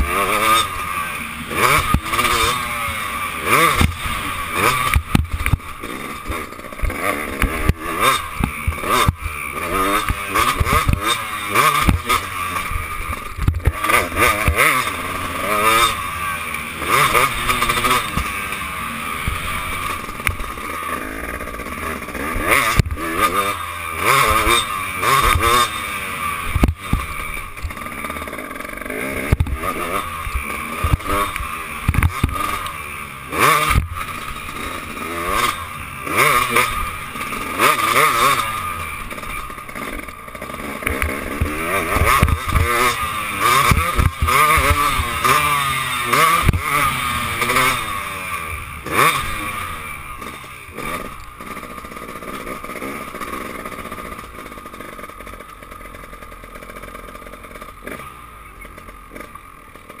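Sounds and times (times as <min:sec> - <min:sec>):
motorbike engine revving: 0:00.0 - 1:00.0.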